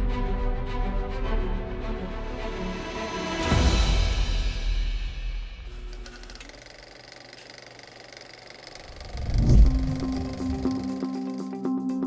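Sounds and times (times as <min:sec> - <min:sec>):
music: 0:00.0 - 0:06.0, 0:09.2 - 0:12.0
low whoosh into deep hit: 0:08.9 - 0:10.8.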